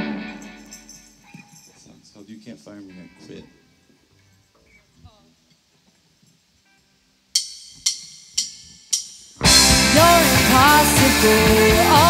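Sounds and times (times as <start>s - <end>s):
rock band playing: 7.4s - 12.0s.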